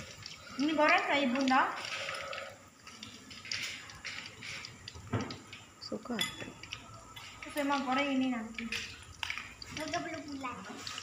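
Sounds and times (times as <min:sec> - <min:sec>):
hot oil sizzling in a wok: 0:00.0 - 0:11.0.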